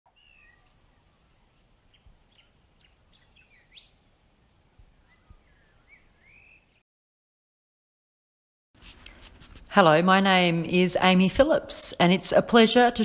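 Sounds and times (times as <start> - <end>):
faint birdsong chirps: 0.1 - 6.8.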